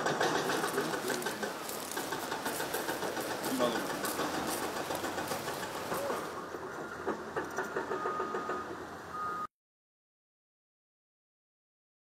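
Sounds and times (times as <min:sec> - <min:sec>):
machine engine running: 0:00.0 - 0:09.1
footsteps on gravel: 0:00.3 - 0:06.4.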